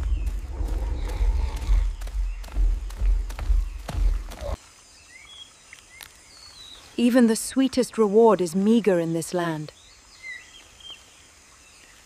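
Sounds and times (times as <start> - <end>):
low rumble: 0.0 - 4.3.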